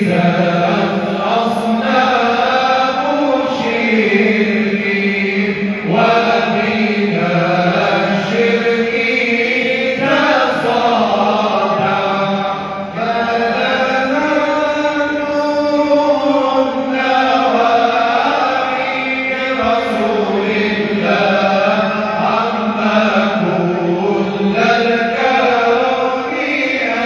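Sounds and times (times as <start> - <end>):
men singing devotional chant: 0.0 - 27.0.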